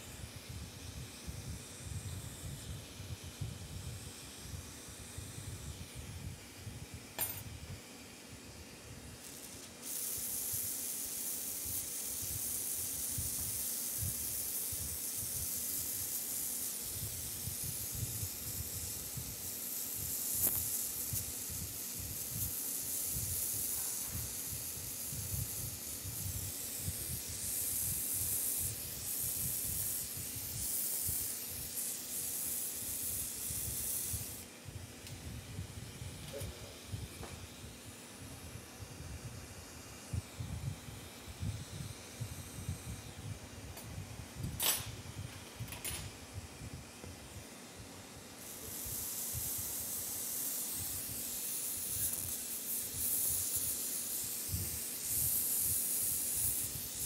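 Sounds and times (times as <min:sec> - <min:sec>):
torch flame hissing and rumbling: 0:00.0 - 0:57.0
loud high hiss: 0:08.4 - 0:57.0
sharp click: 0:43.8 - 0:44.9.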